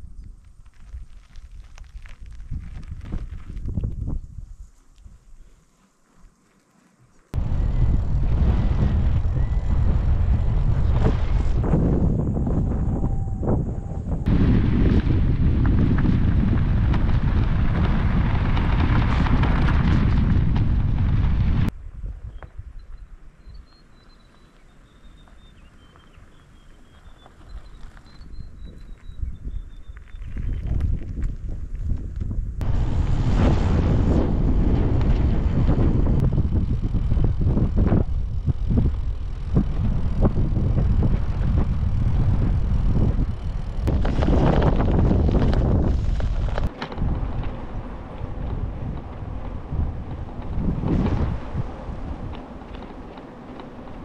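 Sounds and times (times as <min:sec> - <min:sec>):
wind buffeting microphone: 0:00.0 - 0:05.4, 0:07.3 - 0:23.6, 0:25.1 - 0:54.0
faint high bird chirps: 0:22.3 - 0:30.6.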